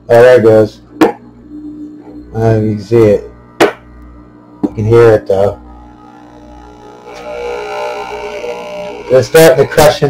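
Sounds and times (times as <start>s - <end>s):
air pump droning buzz: 0.0s - 10.0s.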